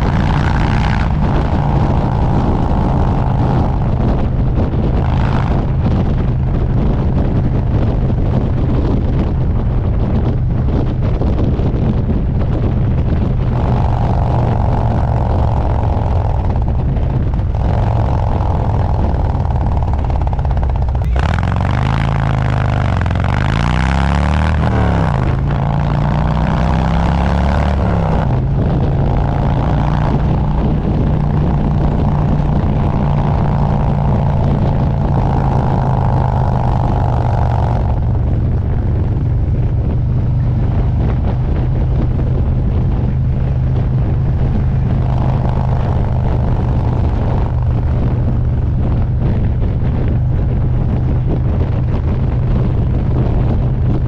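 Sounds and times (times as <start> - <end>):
motorcycle engine running: 0.0 - 54.0
wind rushing over microphone: 0.0 - 54.0.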